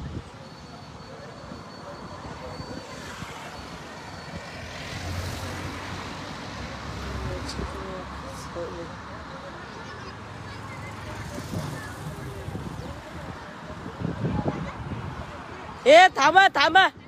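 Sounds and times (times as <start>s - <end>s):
vehicle engine rumble: 0.0s - 15.7s.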